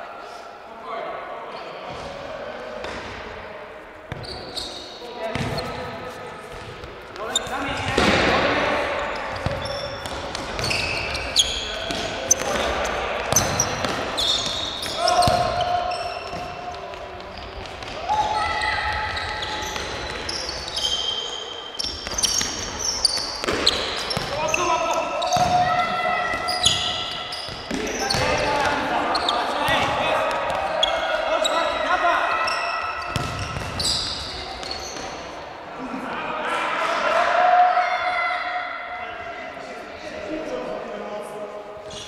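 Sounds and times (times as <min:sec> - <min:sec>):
sneakers squeaking on floor: 0:04.0 - 0:35.4
players calling out: 0:07.2 - 0:38.9
ball kicked and bouncing: 0:33.1 - 0:33.8.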